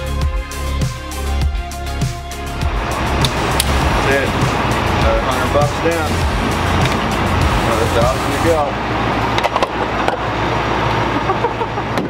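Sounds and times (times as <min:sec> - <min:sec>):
vehicle engine running: 0:02.4 - 0:12.0.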